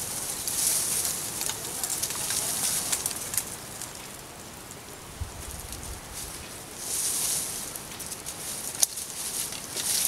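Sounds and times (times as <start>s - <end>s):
leaves and twigs crunching underfoot: 0.0s - 10.0s.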